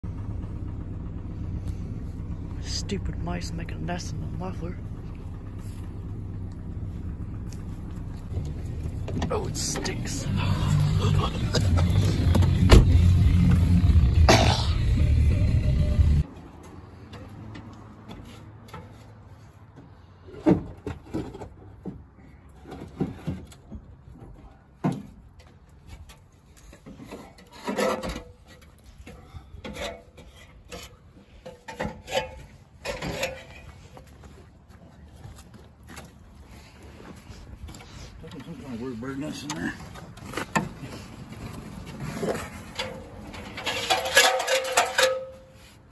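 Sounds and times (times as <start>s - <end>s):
loud low rumble: 0.0s - 16.2s
metal rim knocks and clanks: 42.4s - 45.6s.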